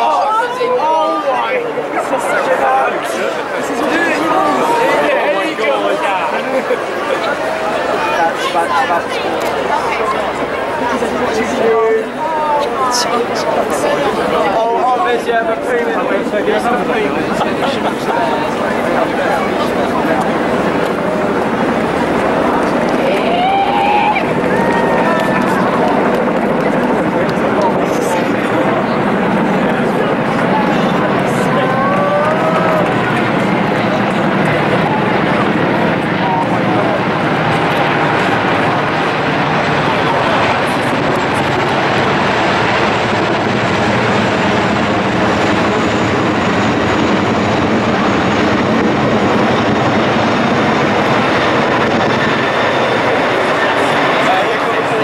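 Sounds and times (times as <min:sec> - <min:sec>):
helicopter rotor and engine drone: 0:00.0 - 0:55.0
voices: 0:00.0 - 0:55.0.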